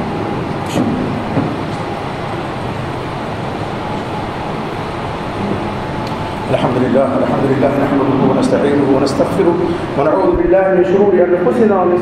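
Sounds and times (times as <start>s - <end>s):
rumbling background noise: 0.0s - 12.0s.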